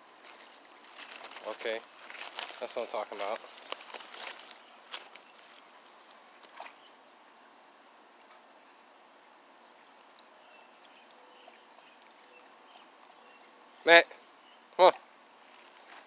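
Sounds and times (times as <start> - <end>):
faint outdoor hiss: 0.0 - 16.0.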